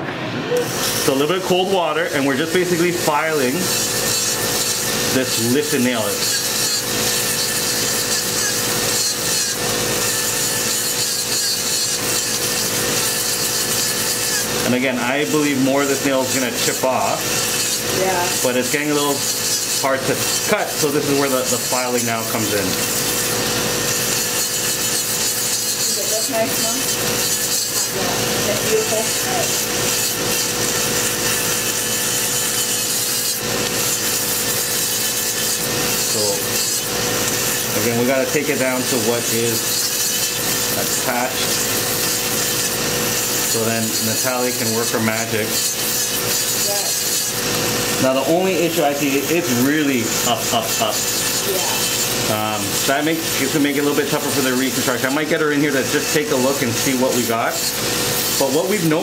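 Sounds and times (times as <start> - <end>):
gritty filing noise: 0.5 - 59.0
nail drill motor whine: 0.5 - 59.0.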